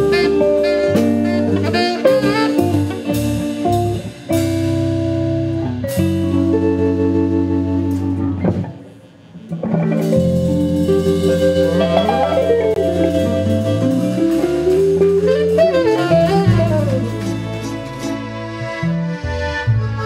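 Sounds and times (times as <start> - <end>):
saxophone long held notes: 0.0 - 4.0, 11.5 - 20.0
live band playing: 0.0 - 20.0.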